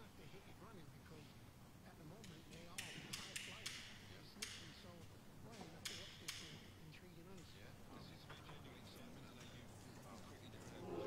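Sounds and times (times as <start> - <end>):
faint murmured voices: 0.0 - 11.0.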